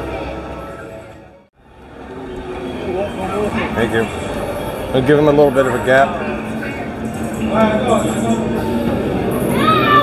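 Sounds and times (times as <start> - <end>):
people talking: 4.9 - 8.8.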